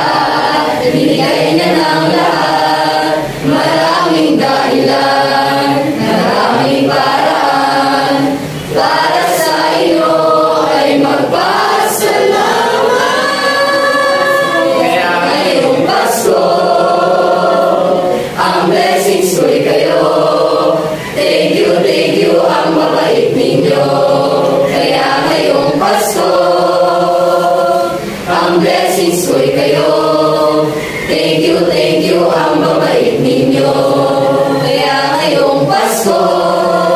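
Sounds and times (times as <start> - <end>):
mixed choir singing: 0.0 - 36.9.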